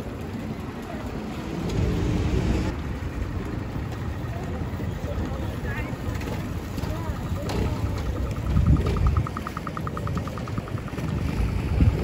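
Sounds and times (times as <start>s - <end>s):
passersby voices: 0.0s - 12.0s
traffic noise: 0.0s - 12.0s.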